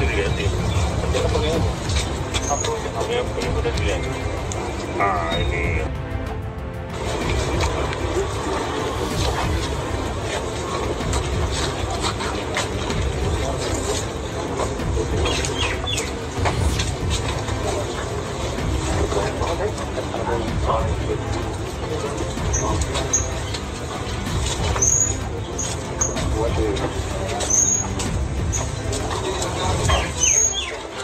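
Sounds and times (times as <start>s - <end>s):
low outdoor rumble: 0.0s - 31.0s
high chirping bird calls: 15.2s - 16.2s, 29.9s - 31.0s.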